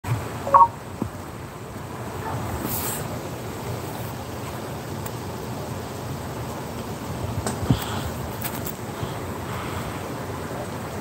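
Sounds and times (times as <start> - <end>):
short electronic beep: 0.5 - 0.8.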